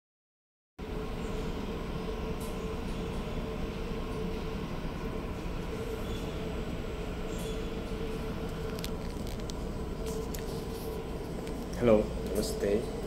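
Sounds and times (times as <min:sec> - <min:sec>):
ship engines droning: 0:00.8 - 0:13.0.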